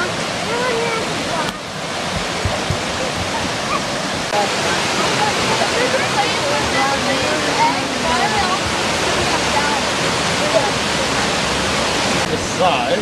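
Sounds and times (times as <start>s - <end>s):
faint voices: 0.0s - 13.0s
waterfall rushing over rocks: 0.0s - 13.0s.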